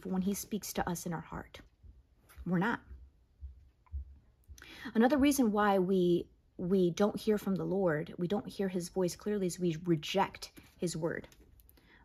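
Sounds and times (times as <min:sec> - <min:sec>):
woman talking: 0:00.0 - 0:01.7, 0:02.3 - 0:03.0, 0:04.8 - 0:11.3
faint low thumps: 0:01.7 - 0:04.7.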